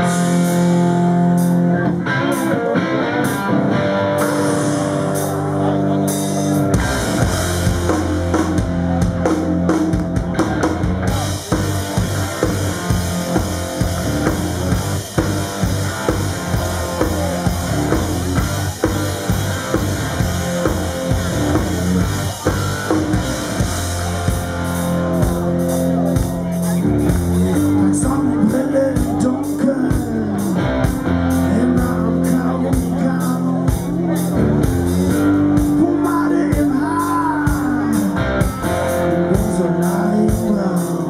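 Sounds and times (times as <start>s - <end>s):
drum kit beat: 0.0s - 41.0s
hard rock band playing: 0.0s - 41.0s.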